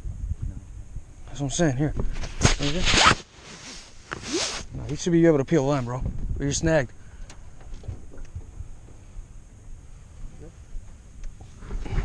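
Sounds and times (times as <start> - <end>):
fabric rubbing on microphone: 2.1 - 5.9.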